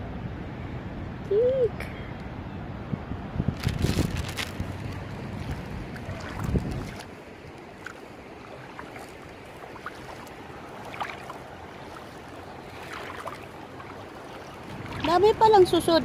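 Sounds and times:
wind buffeting microphone: 0:02.4 - 0:16.0
handling clicks and rustles: 0:03.6 - 0:08.0.

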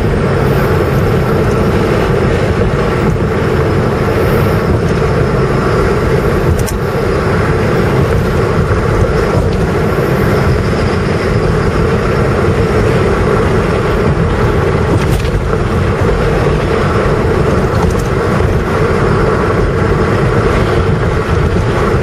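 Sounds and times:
car engine and tyre noise: 0:00.0 - 0:22.0.

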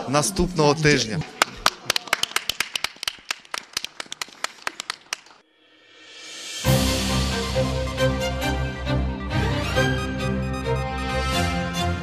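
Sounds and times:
audience applauding: 0:01.0 - 0:05.4.

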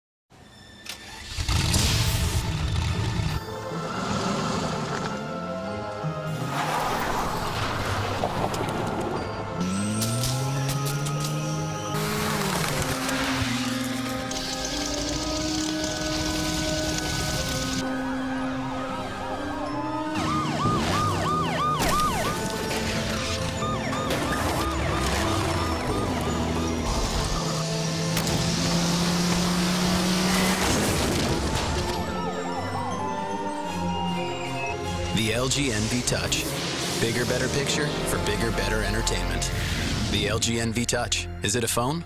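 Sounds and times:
car engine starting and running: 0:00.8 - 0:41.9
emergency sirens yelping: 0:08.8 - 0:39.6.

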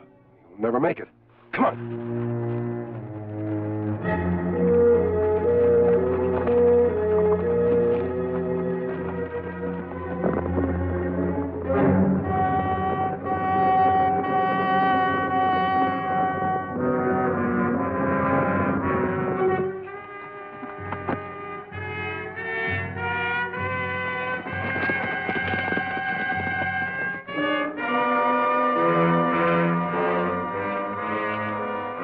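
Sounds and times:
orchestral brass chords: 0:01.6 - 0:24.8, 0:27.0 - 0:32.0.

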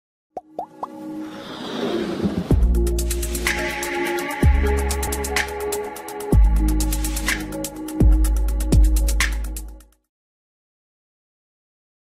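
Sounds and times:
rising pitch pops: 0:00.4 - 0:01.0
swelling musical build: 0:00.7 - 0:09.7.

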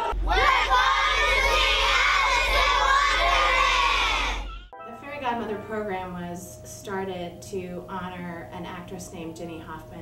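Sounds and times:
children shouting and cheering: 0:00.0 - 0:04.7.

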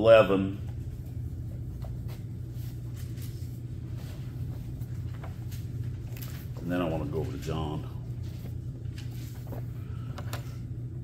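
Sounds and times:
low room hum: 0:00.0 - 0:11.0
pages being turned: 0:01.8 - 0:07.6, 0:08.2 - 0:10.6.

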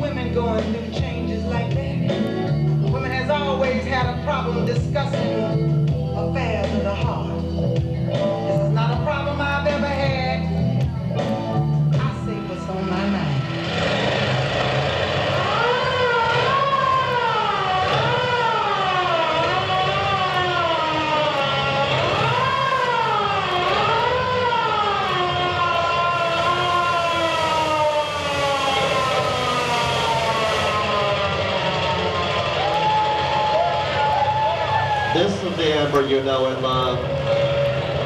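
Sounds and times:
siren-like wailing tone: 0:12.7 - 0:35.6.

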